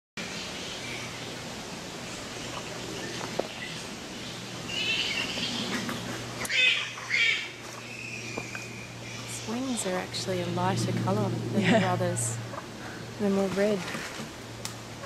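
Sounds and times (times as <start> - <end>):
steady low hum: 0.2 - 15.0
harsh chattering animal calls: 4.7 - 10.2.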